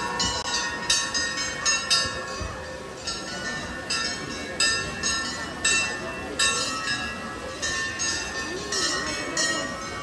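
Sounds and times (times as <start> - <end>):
crowd chatter: 0.0 - 10.0
metal bells ringing: 0.0 - 10.0.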